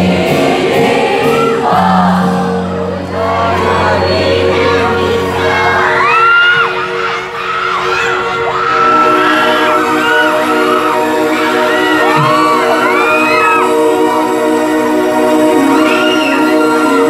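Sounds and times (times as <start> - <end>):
crowd cheering and whooping: 1.1 - 1.9, 5.4 - 14.4, 15.6 - 17.0.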